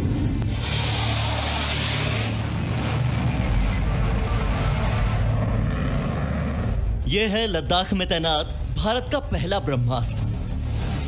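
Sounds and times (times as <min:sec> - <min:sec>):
fighter jet engines roaring: 0:00.0 - 0:07.1.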